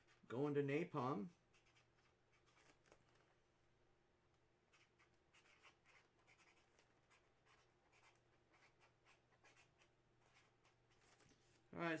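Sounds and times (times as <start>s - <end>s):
pen scratching on paper: 1.3s - 3.0s, 4.7s - 11.3s.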